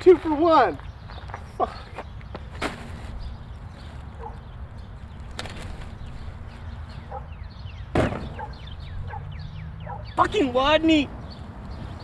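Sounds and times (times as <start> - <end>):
birds chirping: 0.0 - 12.0
loud sharp thump: 7.9 - 8.5.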